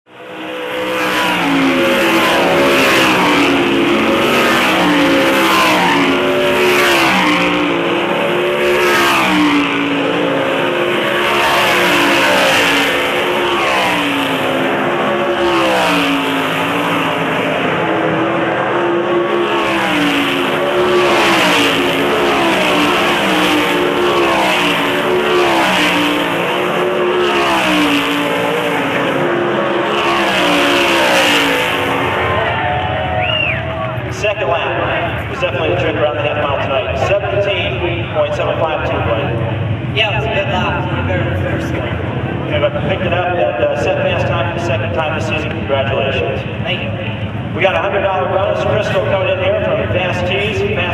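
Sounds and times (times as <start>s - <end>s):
race car engines passing: 0.1s - 50.9s.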